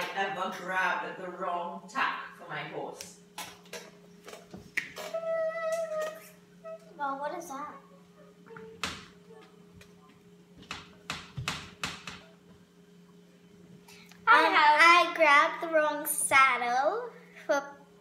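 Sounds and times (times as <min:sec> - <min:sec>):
steady low hum: 0:00.0 - 0:18.0
quiet children's speech: 0:05.0 - 0:10.2.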